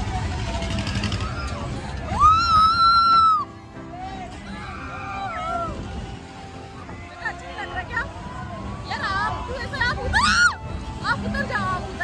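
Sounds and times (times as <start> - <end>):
loud fairground music: 0.0 - 12.0
person screaming on a ride: 1.2 - 3.5.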